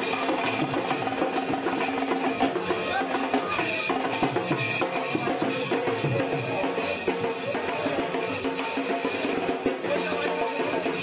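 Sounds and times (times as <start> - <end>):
drums in a fast roll: 0.0 - 11.0.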